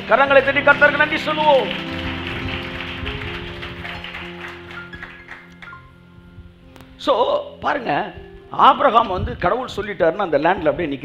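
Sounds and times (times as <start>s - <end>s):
soft sustained chord music: 0.0s - 9.1s.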